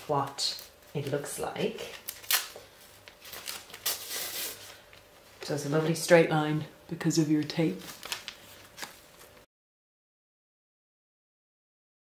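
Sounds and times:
tape ripping off fabric: 2.1 - 2.6, 3.3 - 4.6.

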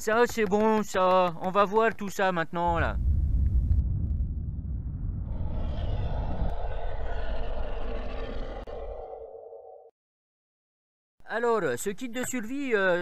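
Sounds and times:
deep rumbling sound effect: 2.7 - 9.8.

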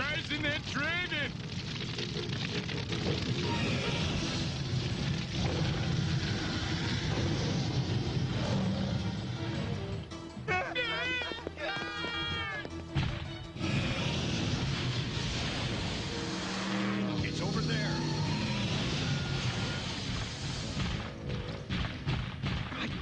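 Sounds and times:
high-pitched frightened yelling: 10.5 - 12.7.

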